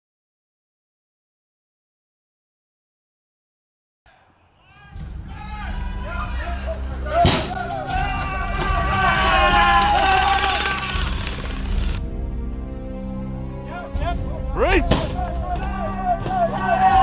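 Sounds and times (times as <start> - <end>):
people yelling and shouting: 4.1 - 11.8, 13.7 - 17.0
background music with low drone: 5.0 - 17.0.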